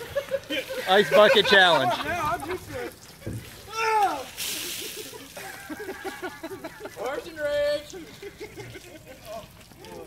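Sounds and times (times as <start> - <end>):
people laughing: 0.0 - 3.4, 4.4 - 9.6.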